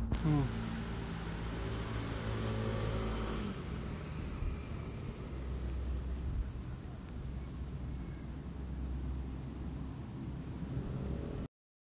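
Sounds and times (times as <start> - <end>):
constant background rush: 0.0 - 11.5
low engine-like hum: 0.0 - 11.5.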